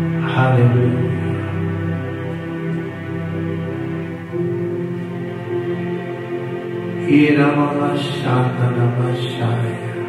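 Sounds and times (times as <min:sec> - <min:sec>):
sustained chords music: 0:00.0 - 0:10.0
man chanting prayer: 0:00.2 - 0:01.5, 0:07.0 - 0:10.0.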